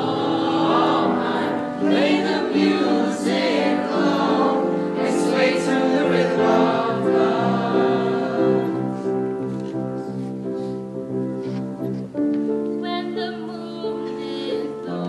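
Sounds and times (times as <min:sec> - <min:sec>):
voices singing together: 0:00.0 - 0:09.3
instrumental accompaniment: 0:00.0 - 0:15.0.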